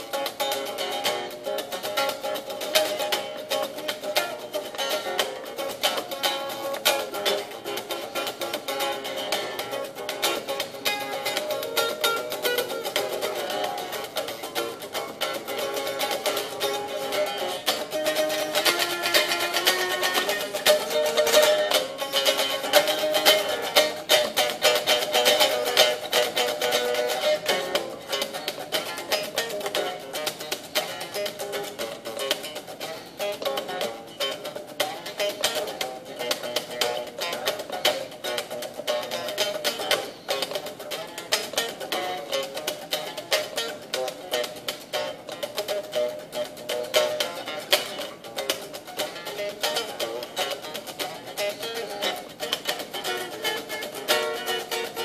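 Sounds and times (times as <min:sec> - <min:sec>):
electric guitar picked runs: 0:00.0 - 0:55.0.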